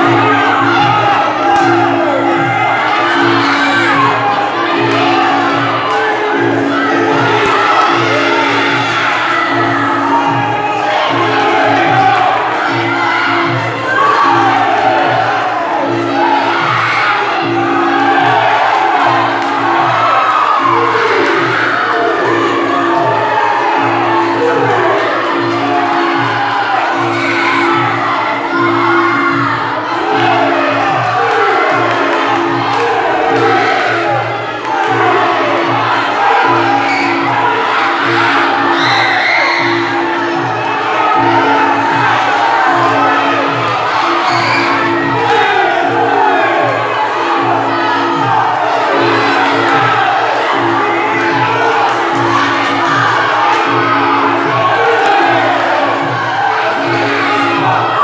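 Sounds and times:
music with steady repeating beat: 0.0 - 58.0
spectators shouting and cheering: 0.0 - 58.0.

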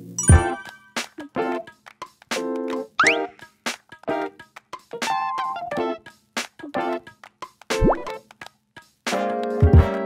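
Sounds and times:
background music: 0.0 - 8.4, 9.1 - 10.0
cartoon bloop sound effect: 3.0 - 3.3, 7.8 - 8.1.

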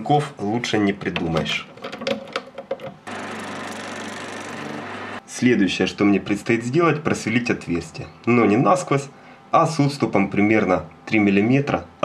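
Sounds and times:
metal lathe running: 3.1 - 5.2.

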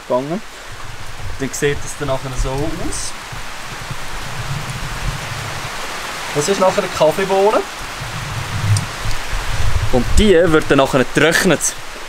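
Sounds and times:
rain falling on shelter roof: 0.0 - 12.0.

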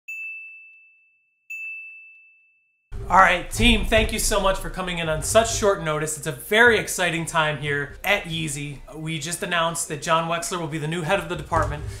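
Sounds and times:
bright bell dings: 0.1 - 2.6.

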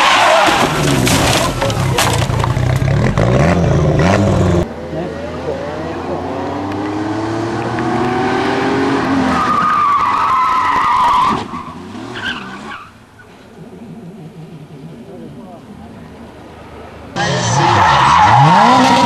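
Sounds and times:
car engine revving: 0.6 - 9.6, 13.3 - 19.0
tyres squealing: 17.2 - 19.0.

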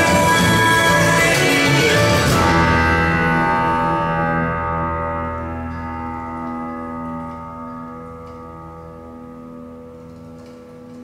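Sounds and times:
held chord over loudspeakers: 0.0 - 11.0.

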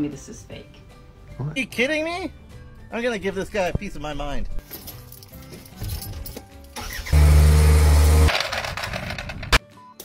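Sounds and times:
loader engine running: 7.0 - 9.5.

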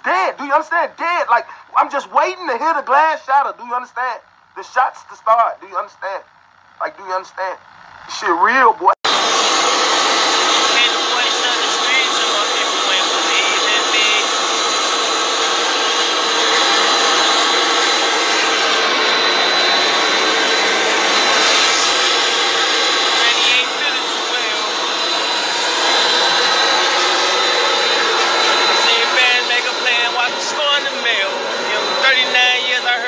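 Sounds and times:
jet engines running: 0.0 - 33.0.

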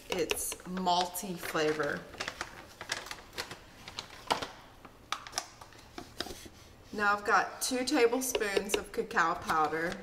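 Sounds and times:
plastic pouches clicking and crinkling: 0.1 - 5.9.

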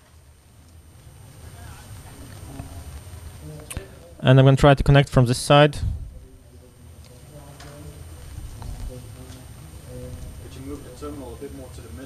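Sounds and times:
faint voices: 0.8 - 12.0.

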